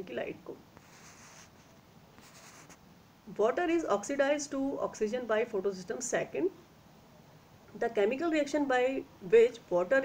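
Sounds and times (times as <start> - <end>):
scratchy rubbing noises: 0.8 - 2.8.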